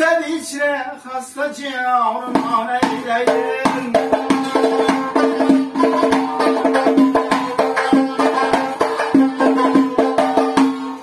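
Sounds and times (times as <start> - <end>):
plucked lute melody: 2.3 - 11.0.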